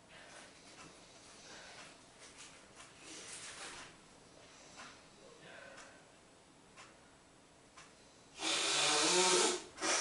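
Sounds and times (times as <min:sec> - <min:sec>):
person snorting through nose: 0:08.4 - 0:10.0.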